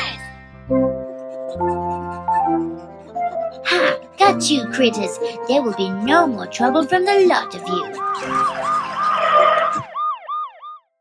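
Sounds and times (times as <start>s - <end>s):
cartoon siren wailing: 7.5s - 10.9s.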